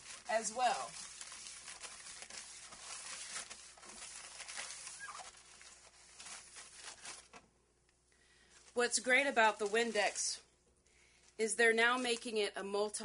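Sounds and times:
paper rubbing on glass: 0.0 - 7.2.

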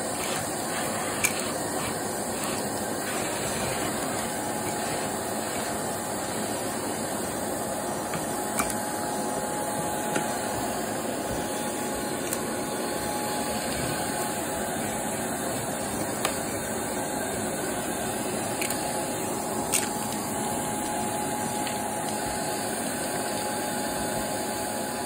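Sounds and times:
vacuum cleaner on carpet: 0.0 - 25.0
debris clicking up vacuum wand: 0.1 - 5.8.

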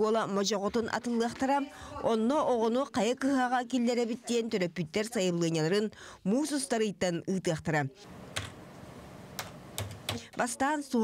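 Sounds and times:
typing on computer keyboard: 9.4 - 10.4.

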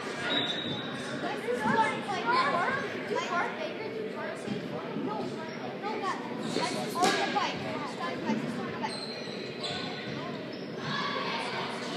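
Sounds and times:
faint echoing voices: 0.0 - 11.9.

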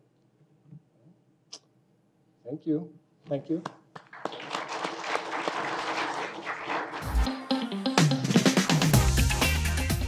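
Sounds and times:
audience applause: 4.0 - 7.3.

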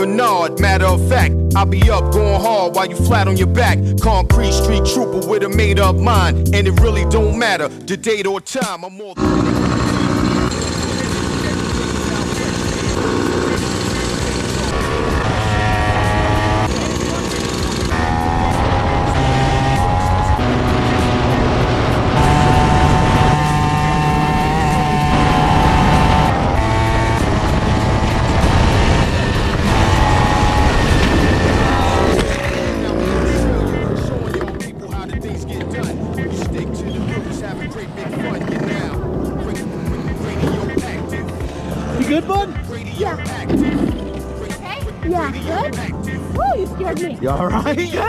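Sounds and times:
music playing: 0.0 - 48.0
kart knocking and scraping: 9.2 - 34.8
kart engine racing: 9.2 - 45.9.

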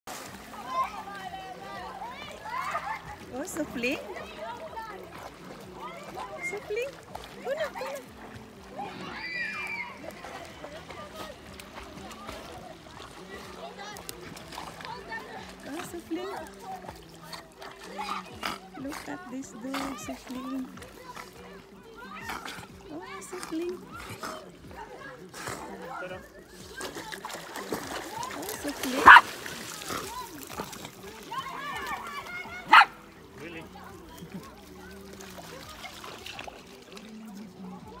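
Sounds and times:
dogs splashing in water: 0.1 - 38.0
dog barking: 29.0 - 29.3, 32.7 - 33.0.

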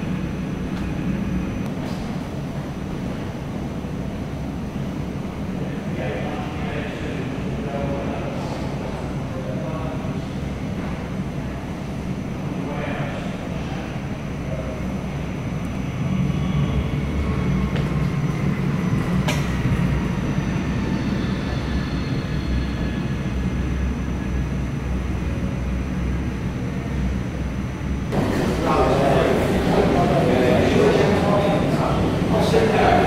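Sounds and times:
jet engine rumble: 0.0 - 33.0
jet engine whine: 0.0 - 33.0.

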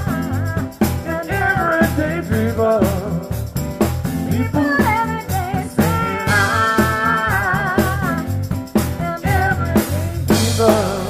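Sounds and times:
drum kit beat: 0.0 - 11.0
keyboard bass line: 0.0 - 11.0
keyboard chords: 0.0 - 11.0.

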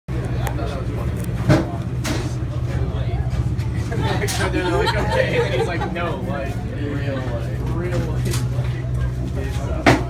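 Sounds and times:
boat engine rumbling: 0.1 - 10.0.

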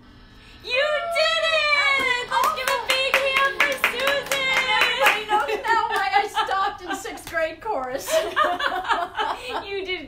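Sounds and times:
drawn-out vocal cheers: 0.8 - 5.7
hands clapping: 2.0 - 6.2, 7.2 - 8.0.

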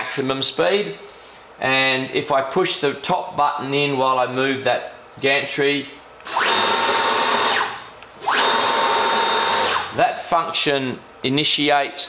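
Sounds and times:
gantry motors whining: 6.2 - 10.0.

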